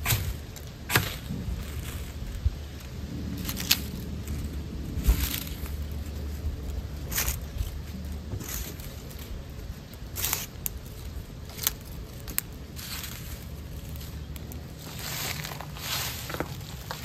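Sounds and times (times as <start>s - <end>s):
dry leaves crinkling: 0.0s - 17.0s.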